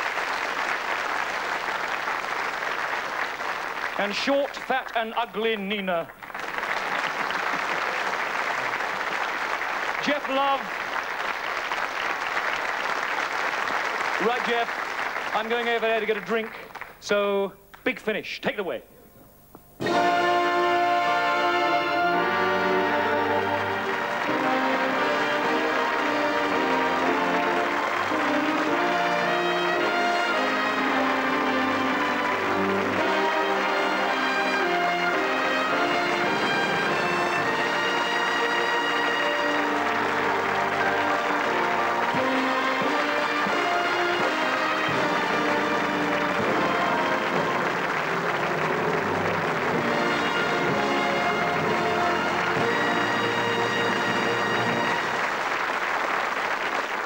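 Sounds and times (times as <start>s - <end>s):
audience applauding: 0.0s - 17.8s, 19.8s - 57.0s
band playing: 19.7s - 55.7s.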